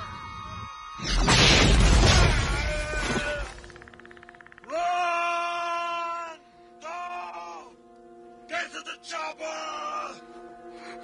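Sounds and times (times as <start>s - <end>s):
sustained music drone: 0.0s - 11.0s
person crying out: 4.7s - 7.7s.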